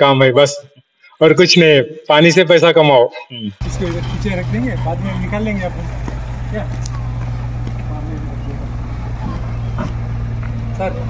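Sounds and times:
faint voices: 3.3 - 11.0
truck engine idling: 3.6 - 11.0.

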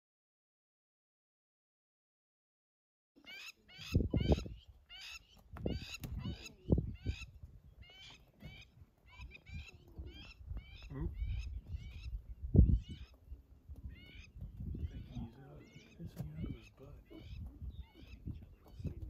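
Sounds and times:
birds calling: 3.2 - 19.0.

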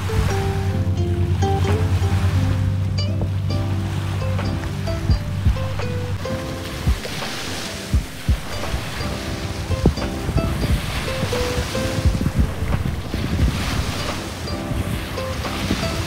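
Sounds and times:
background music with beat: 0.0 - 16.0
waves breaking on sand: 0.0 - 16.0
wind buffeting microphone: 0.0 - 16.0.

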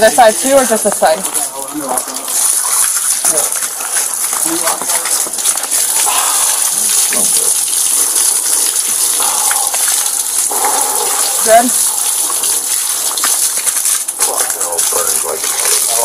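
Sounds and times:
water gushing from hose: 0.0 - 16.0
water splashing on concrete: 0.0 - 16.0.

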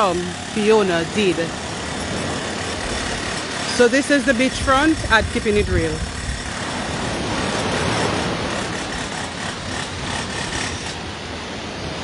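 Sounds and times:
sea waves washing on beach: 0.0 - 12.0.

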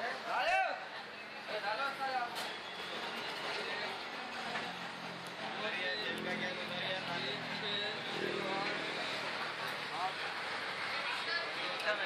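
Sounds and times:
passing motor traffic: 2.9 - 12.0.

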